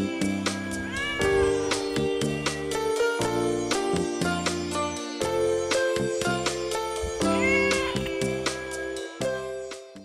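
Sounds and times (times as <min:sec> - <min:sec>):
cat meowing: 0:00.6 - 0:02.5, 0:07.0 - 0:08.4.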